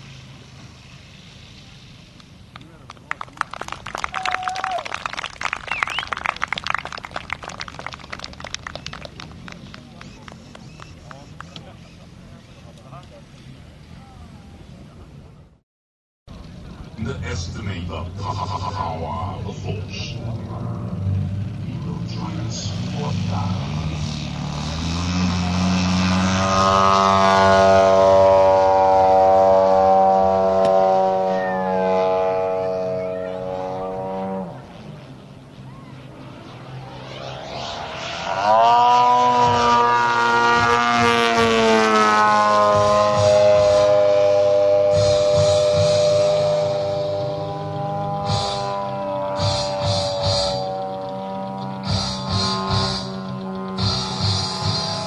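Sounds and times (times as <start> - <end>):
model plane engine at high power: 16.3 - 55.0.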